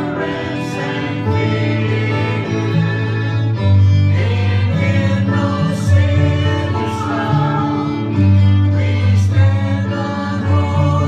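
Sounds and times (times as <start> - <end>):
guitar: 0.0 - 11.0
singers singing a hymn: 0.0 - 11.0
violins: 0.0 - 11.0.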